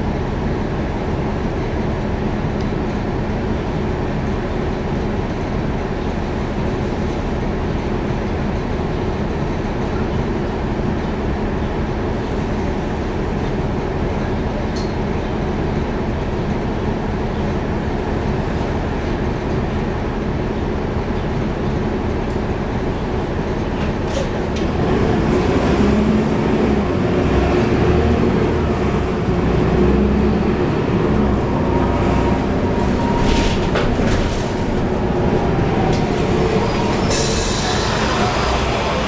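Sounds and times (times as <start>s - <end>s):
bus diesel engine rumbling: 0.0s - 39.0s.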